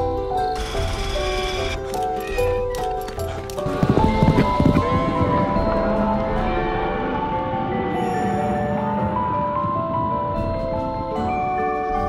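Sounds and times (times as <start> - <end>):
background music of held notes: 0.0 - 12.0
horse hoofbeats: 0.6 - 6.1.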